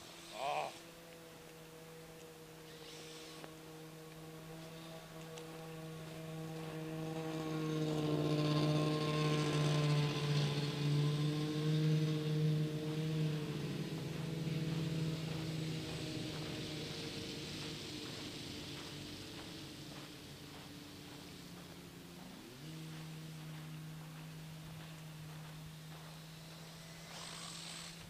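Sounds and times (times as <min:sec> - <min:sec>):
motor droning: 0:00.0 - 0:28.0
hiss: 0:26.5 - 0:28.0.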